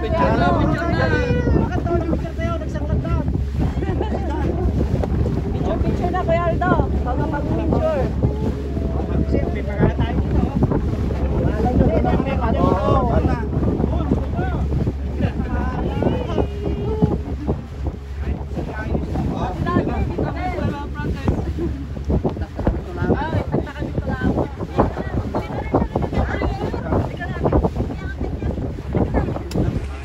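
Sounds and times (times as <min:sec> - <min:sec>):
choppy water wash: 0:00.0 - 0:30.0
people talking: 0:00.0 - 0:30.0
wind buffeting microphone: 0:00.0 - 0:30.0.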